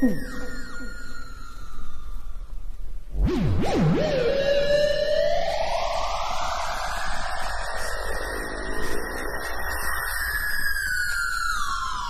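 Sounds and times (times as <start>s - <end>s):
noisy band of sound sweeping in pitch: 3.2s - 11.9s.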